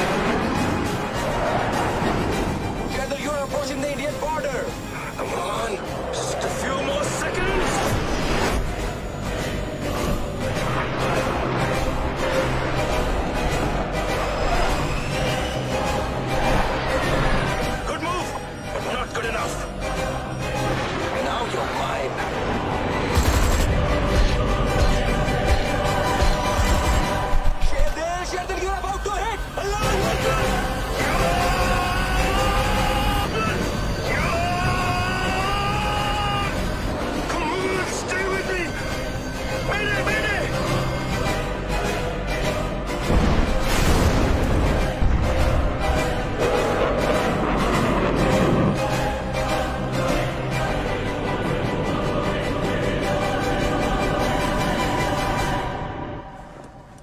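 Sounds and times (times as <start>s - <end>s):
dramatic score music: 0.0s - 57.0s.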